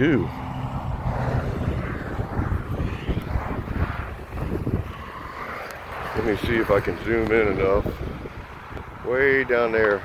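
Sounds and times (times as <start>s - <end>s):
road traffic going by: 0.0s - 10.0s
wind rumbling on microphone: 0.0s - 10.0s.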